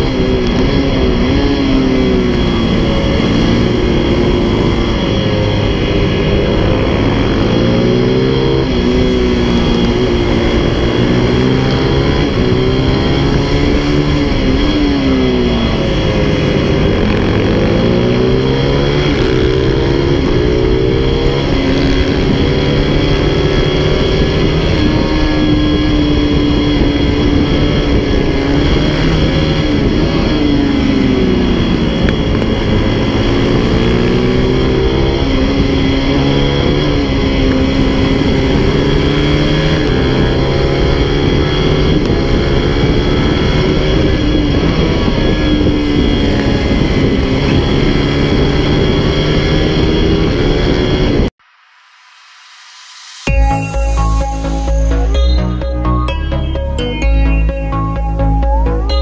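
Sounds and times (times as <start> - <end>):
racing motorcycle engine: 0.0 - 59.0.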